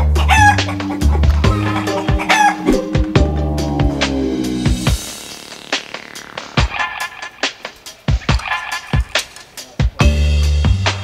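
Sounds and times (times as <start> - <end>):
chicken calling: 0.0 - 9.5
background music with bass: 0.0 - 11.0.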